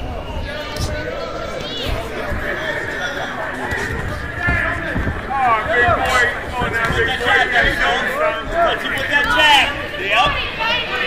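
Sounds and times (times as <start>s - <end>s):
people shouting: 0.0s - 11.0s.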